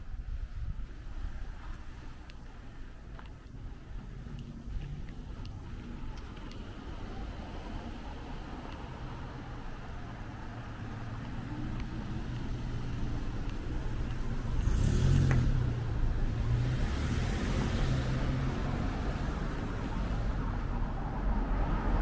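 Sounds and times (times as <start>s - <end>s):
cars driving past: 1.6s - 22.0s
van passing close by: 4.8s - 22.0s.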